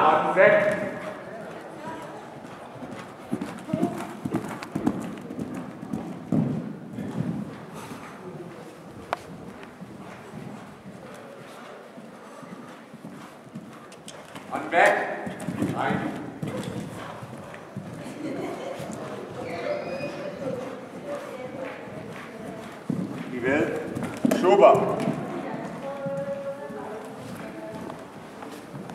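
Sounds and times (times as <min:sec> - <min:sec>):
horse hoofbeats on sand: 0:00.5 - 0:18.1, 0:20.1 - 0:28.9.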